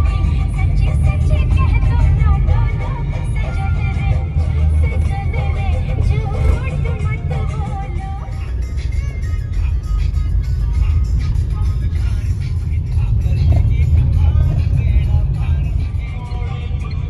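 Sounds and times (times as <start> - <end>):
car driving rumble: 0.0 - 17.0
music playing: 0.0 - 17.0.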